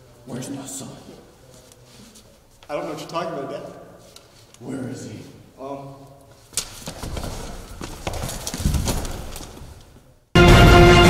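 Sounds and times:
running footsteps on hard floor: 6.4s - 10.2s.

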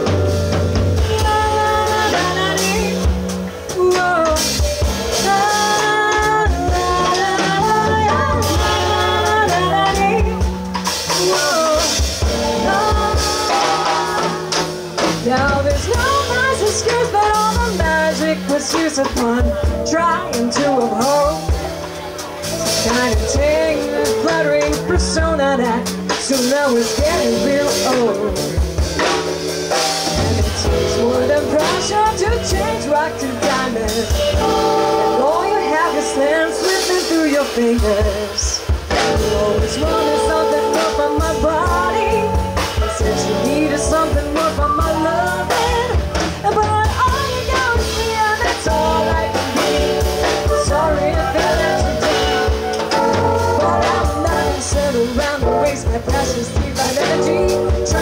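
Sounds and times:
electric bass notes: 0.0s - 58.0s
jazz band playing: 0.0s - 58.0s
woman singing: 0.0s - 58.0s
cymbals: 6.7s - 17.6s.

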